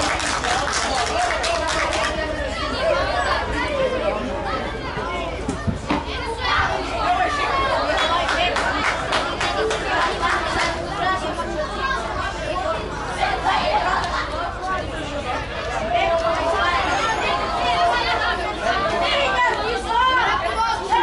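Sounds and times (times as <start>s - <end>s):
people shouting and calling: 0.0s - 21.0s.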